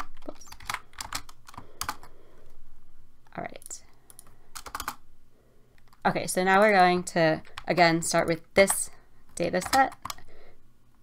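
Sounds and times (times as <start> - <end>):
computer keyboard typing: 0.0 - 2.2, 3.5 - 5.0, 6.6 - 8.0, 8.6 - 10.3.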